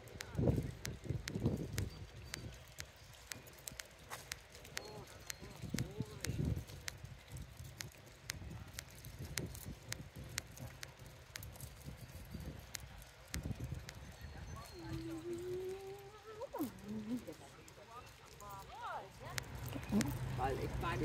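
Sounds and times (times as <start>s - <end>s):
faint voices: 12.6s - 21.0s
low outdoor rumble: 15.0s - 21.0s.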